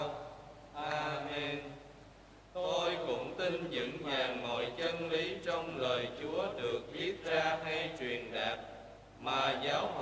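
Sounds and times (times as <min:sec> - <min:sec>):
men reciting prayer in unison: 0:00.0 - 0:01.9, 0:02.5 - 0:10.0.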